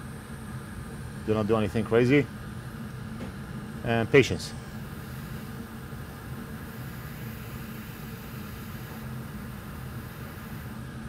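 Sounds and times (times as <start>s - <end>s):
low hum with hiss: 0.0s - 11.0s.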